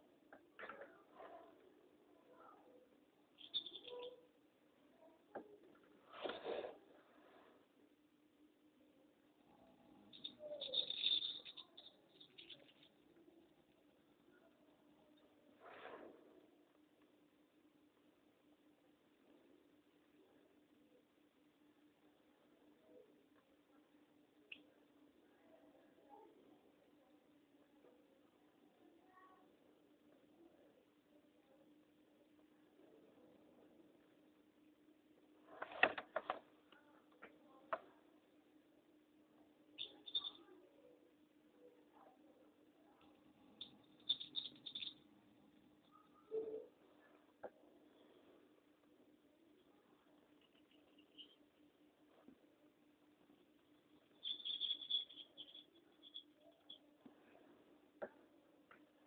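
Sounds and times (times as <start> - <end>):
faint room hiss: 0.0 - 59.0
faint high-pitched tone: 0.6 - 5.8, 8.8 - 15.5, 36.7 - 57.7.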